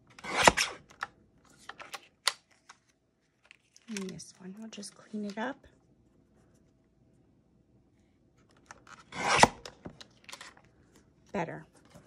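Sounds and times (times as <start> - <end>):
paper trimmer slicing and snapping: 0.1 - 1.1, 8.9 - 9.8.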